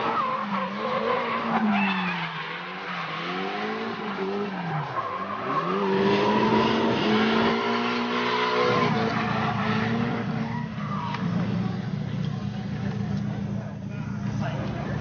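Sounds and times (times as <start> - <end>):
tyres sliding on asphalt: 0.0 - 13.7.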